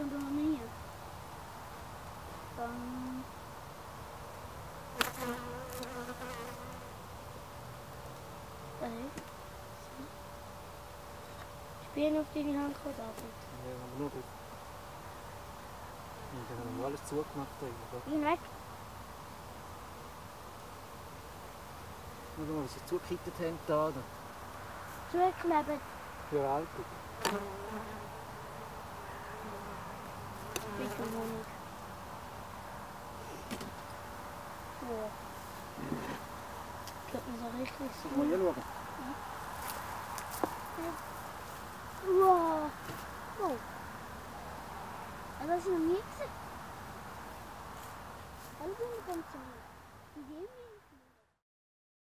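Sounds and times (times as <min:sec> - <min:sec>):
bees buzzing: 0:01.6 - 0:49.6
bee wingbeat drone passing close: 0:27.2 - 0:31.7.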